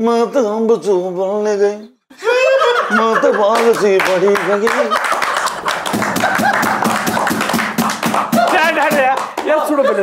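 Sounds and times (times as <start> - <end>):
people laughing: 2.1 - 10.0
men clapping hands: 3.5 - 10.0.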